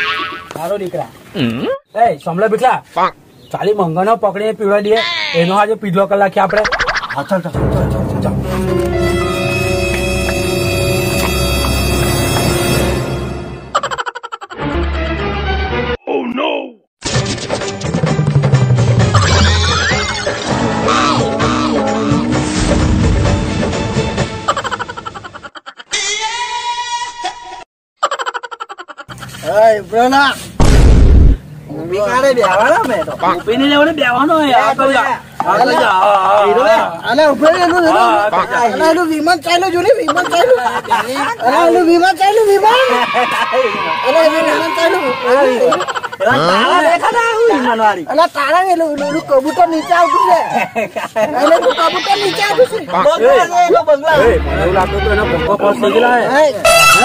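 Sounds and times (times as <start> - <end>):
man talking animatedly: 3.6 - 8.4
voice with sliding pitch: 6.4 - 7.4
held musical note: 7.6 - 13.6.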